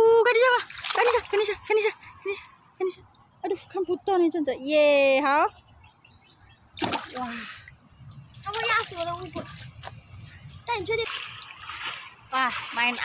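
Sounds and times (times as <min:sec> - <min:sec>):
water splashing and sloshing: 0:00.0 - 0:03.4, 0:06.3 - 0:13.0.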